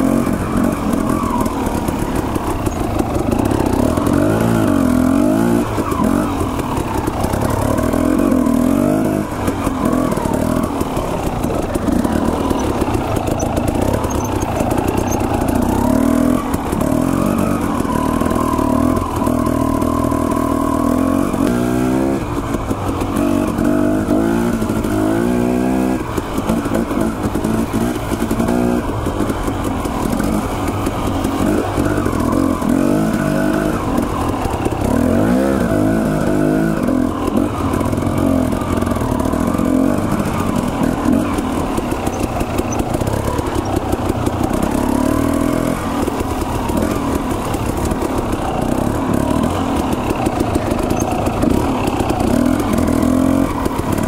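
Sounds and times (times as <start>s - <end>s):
dirt bike engine revving: 0.0s - 54.0s.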